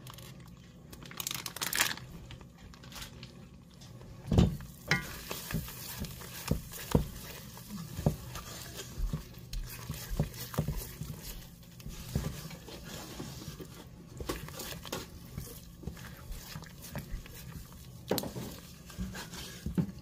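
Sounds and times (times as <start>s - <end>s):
wooden spoon scraping skillet: 4.8s - 20.0s.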